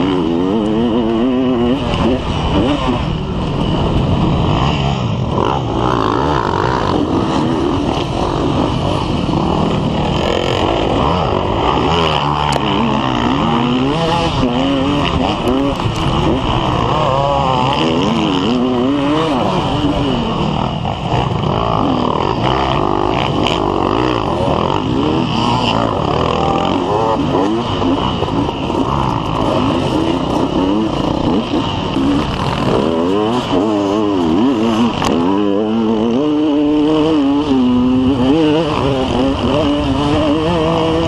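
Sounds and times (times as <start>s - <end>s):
dirt bike engine revving: 0.0s - 41.0s
other dirt bikes running: 0.0s - 41.0s.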